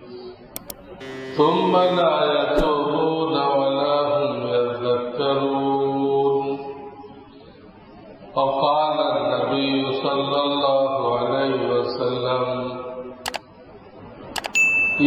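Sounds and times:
man reciting melodically: 1.0s - 4.4s.

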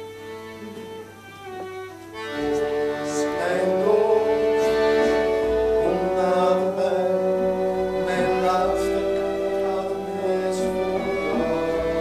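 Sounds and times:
violin playing slow held notes: 0.0s - 12.0s.

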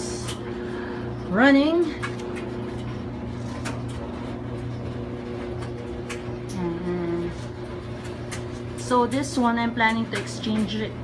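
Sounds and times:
clothes dryer humming: 0.0s - 11.0s.

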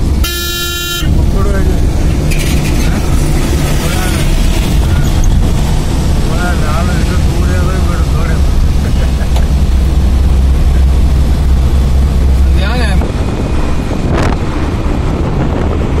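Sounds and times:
vehicle rumble from inside: 0.0s - 16.0s
wind on microphone: 1.1s - 6.3s, 9.7s - 16.0s.

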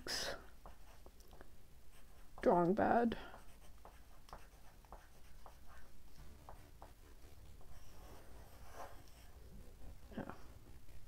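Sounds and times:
pencil scratching on paper: 0.3s - 1.2s, 1.9s - 11.0s.

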